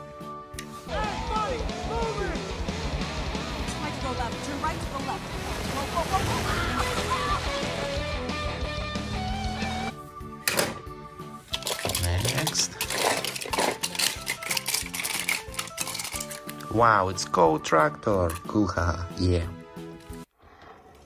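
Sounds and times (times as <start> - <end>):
film soundtrack music: 0.0 - 20.7
toy cars clattering: 11.5 - 16.7.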